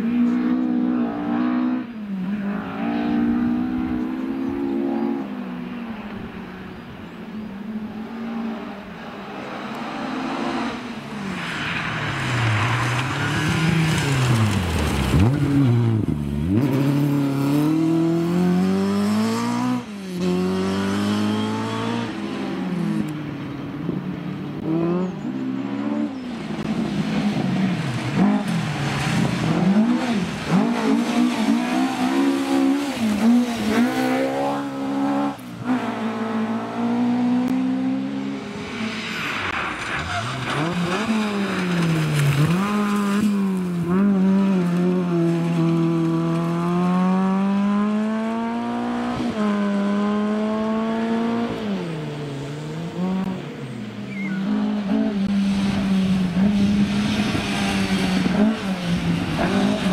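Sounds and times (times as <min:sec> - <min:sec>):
rally car engines revving past: 0:00.0 - 0:59.9.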